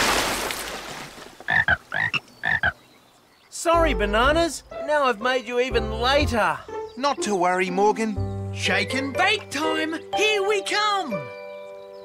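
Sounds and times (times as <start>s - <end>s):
water splash: 0.0s - 1.4s
cartoon frog croaks: 1.5s - 2.8s.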